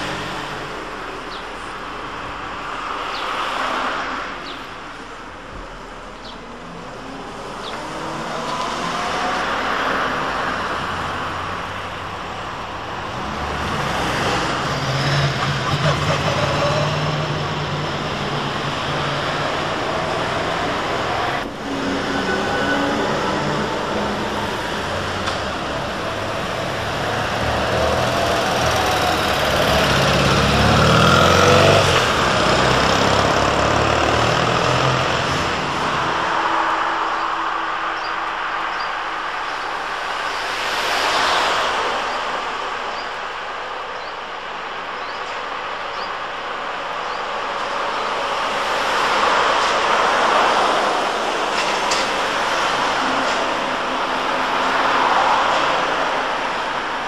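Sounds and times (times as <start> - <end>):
road traffic: 0.0 - 57.0.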